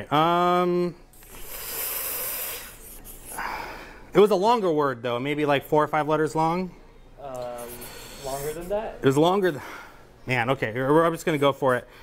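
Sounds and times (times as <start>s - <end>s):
marker scratching on paper: 1.2s - 3.4s, 7.4s - 8.8s.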